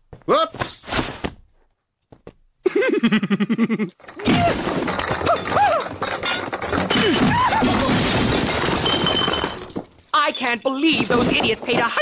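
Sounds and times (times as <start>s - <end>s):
cartoon crates and glass crashing: 4.0s - 12.0s.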